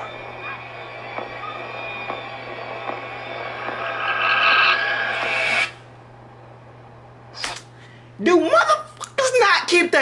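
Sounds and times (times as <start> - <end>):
tense horror soundtrack: 0.0 - 5.9.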